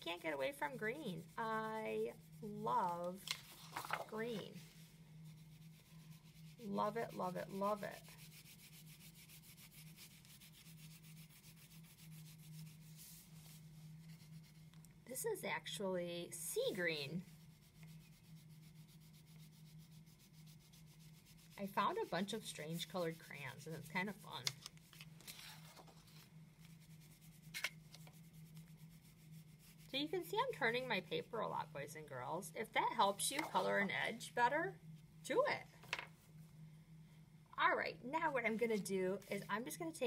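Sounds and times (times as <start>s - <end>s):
crayon scratching on paper: 0.0s - 4.7s, 5.3s - 14.6s, 16.6s - 24.6s.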